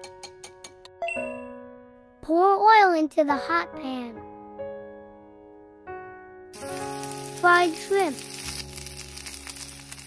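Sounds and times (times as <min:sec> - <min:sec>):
shrimp sizzling in frying pan: 0:06.6 - 0:10.0.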